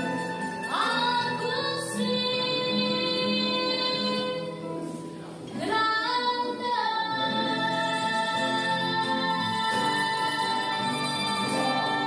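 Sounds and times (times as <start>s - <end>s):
woman singing: 0.0s - 4.8s, 5.5s - 12.0s
mandolin and guitar accompaniment: 0.0s - 12.0s.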